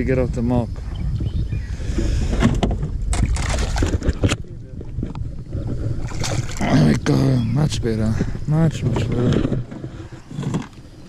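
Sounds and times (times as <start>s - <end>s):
wind rumble on microphone: 0.0s - 11.0s
fish splashing in water: 3.1s - 4.3s, 6.0s - 6.7s.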